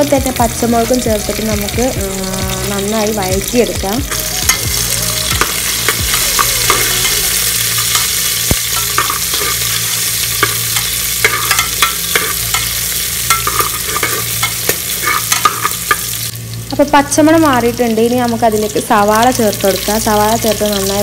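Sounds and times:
food sizzling in hot oil: 0.0s - 21.0s
spatula scraping and knocking pot: 8.7s - 9.8s.

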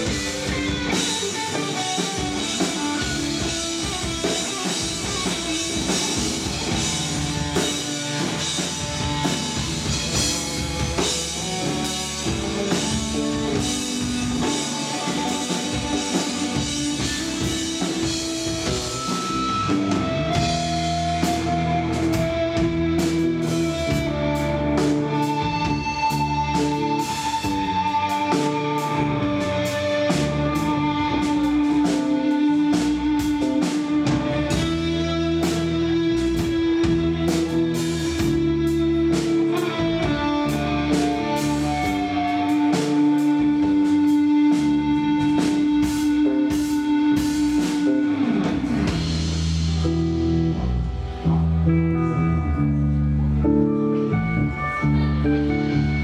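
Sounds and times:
rock band playing: 0.0s - 56.0s.

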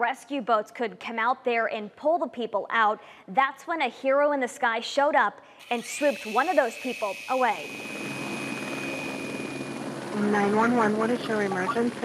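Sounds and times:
small electric motor whine: 5.6s - 12.0s
helicopter rotor and engine: 5.7s - 12.0s.

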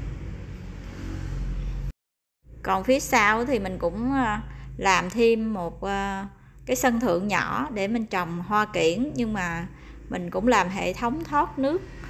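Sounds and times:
street traffic noise: 0.0s - 1.9s, 7.4s - 12.0s
vehicle engine: 0.0s - 1.9s, 9.0s - 12.0s.

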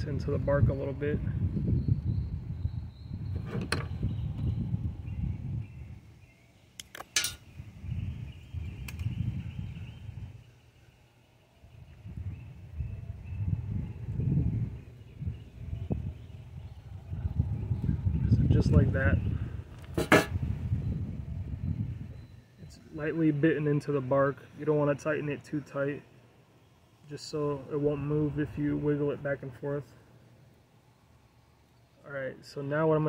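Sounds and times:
sharp metallic clicks: 6.8s - 7.4s.

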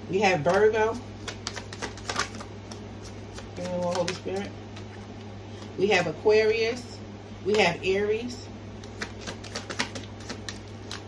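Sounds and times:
steady low hum: 0.0s - 11.0s
cards being shuffled: 0.5s - 5.7s, 8.8s - 11.0s.

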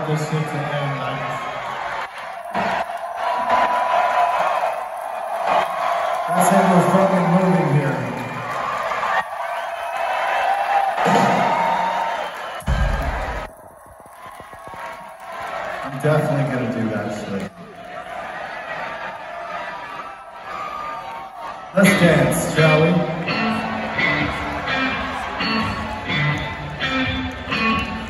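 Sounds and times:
crowd shouting and cheering: 0.0s - 28.0s.

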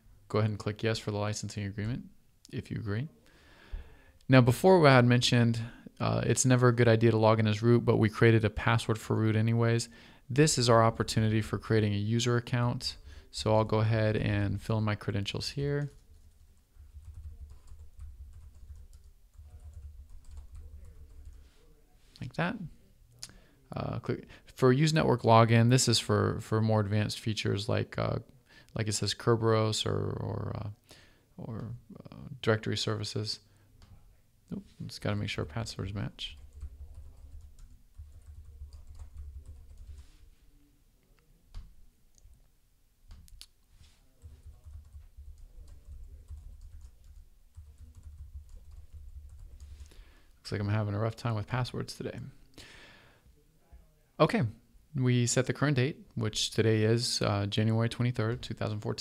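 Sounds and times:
computer keyboard typing: 15.8s - 21.4s, 36.3s - 40.0s, 44.2s - 49.8s.

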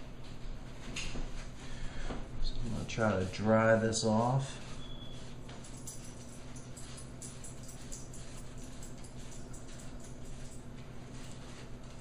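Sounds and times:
steady low hum: 0.0s - 12.0s
paper towel rustling: 10.4s - 12.0s.

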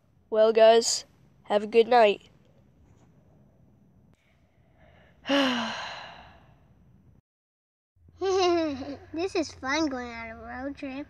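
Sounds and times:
person sighing: 5.2s - 6.4s.

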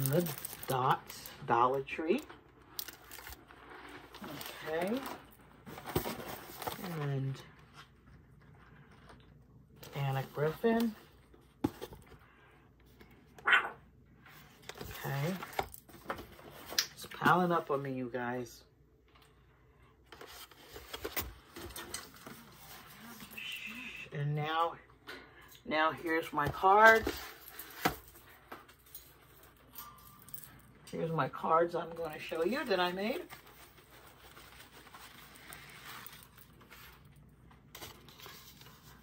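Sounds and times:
cardboard rustling: 0.0s - 1.1s, 2.4s - 9.1s, 20.1s - 23.6s, 31.9s - 39.0s
plastic packaging handled: 0.0s - 12.2s, 14.3s - 17.7s, 20.1s - 24.0s, 26.0s - 39.0s.

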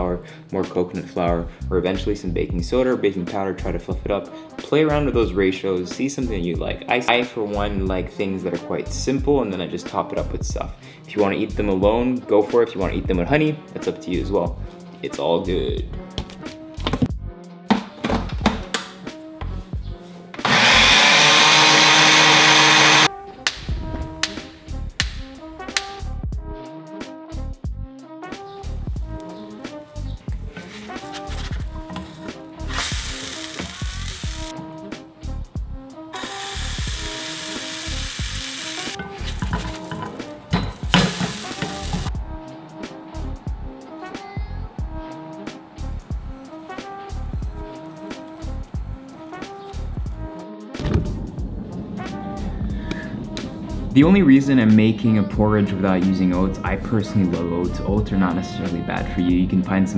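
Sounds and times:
background music with steady beat: 0.0s - 59.9s
electric blender running: 20.4s - 23.1s, 36.2s - 39.0s.

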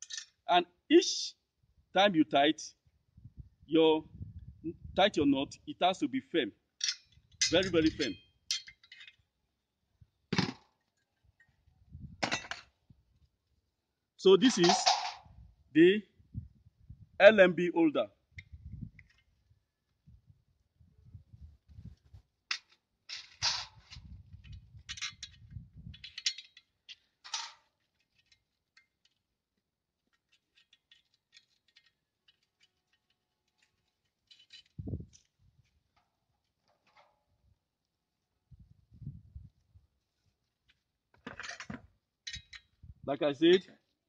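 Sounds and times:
screws rattling: 14.5s - 15.2s, 24.4s - 28.5s, 30.2s - 35.3s.

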